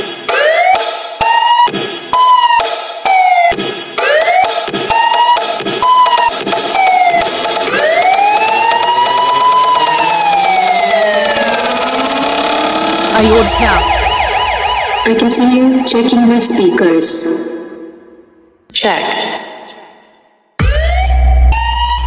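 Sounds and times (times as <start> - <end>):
electronic siren-like sweeping tones: 0.3 - 18.3.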